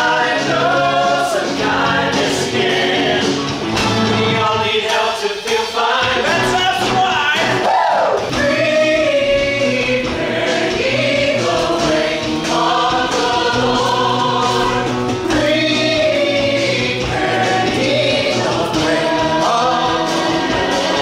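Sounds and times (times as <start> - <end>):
band accompaniment: 0.0 - 21.0
chorus singing: 0.0 - 21.0.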